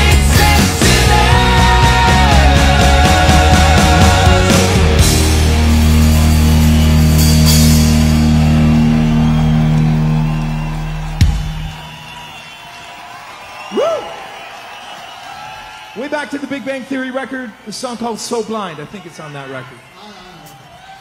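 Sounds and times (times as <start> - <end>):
rock band holding final chord: 0.0 - 11.8.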